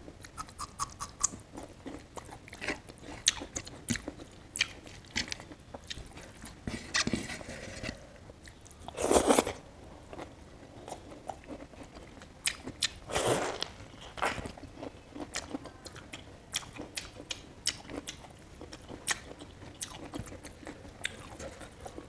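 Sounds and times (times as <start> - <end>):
chewing and biting food: 0.2 - 7.2, 10.1 - 22.0.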